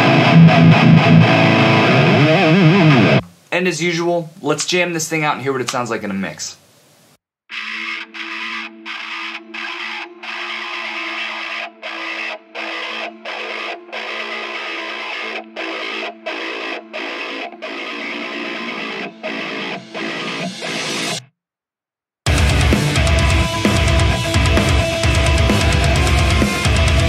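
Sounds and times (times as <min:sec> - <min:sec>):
distorted electric guitar: 0:00.0 - 0:03.3, 0:07.5 - 0:21.3, 0:22.3 - 0:27.0.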